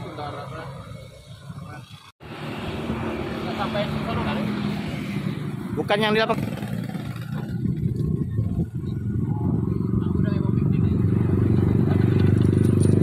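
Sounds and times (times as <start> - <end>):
motorcycle engine idling: 5.6 - 10.8.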